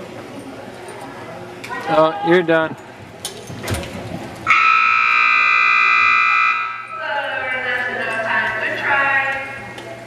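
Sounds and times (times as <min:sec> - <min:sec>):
arena timing buzzer blast: 0:04.5 - 0:06.9.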